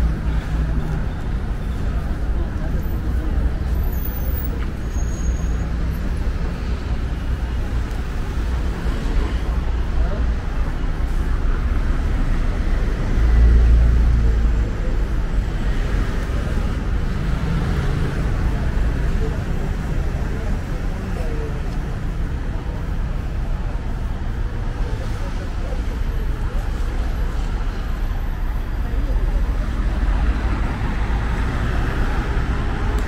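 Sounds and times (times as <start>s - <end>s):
people talking: 0.0s - 33.0s
traffic engine rumble: 0.0s - 33.0s.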